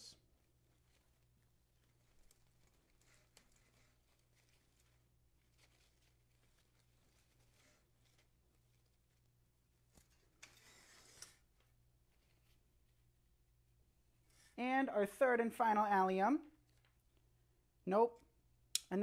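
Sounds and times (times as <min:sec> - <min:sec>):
artificial flowers rustling: 0:00.0 - 0:13.4, 0:14.0 - 0:14.7
wreath rustling on table: 0:00.2 - 0:13.0.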